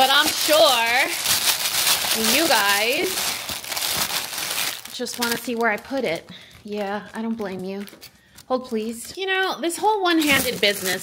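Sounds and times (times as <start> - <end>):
plastic bags crinkling: 0.0 - 9.4, 10.0 - 11.0.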